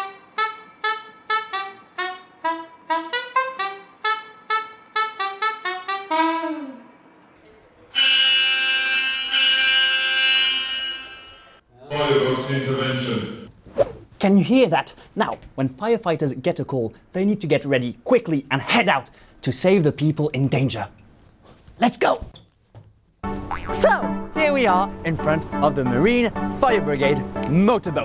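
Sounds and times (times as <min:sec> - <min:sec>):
saxophone playing short notes: 0:00.0 - 0:07.0, 0:07.9 - 0:12.4
fire station alert tone: 0:08.0 - 0:13.5.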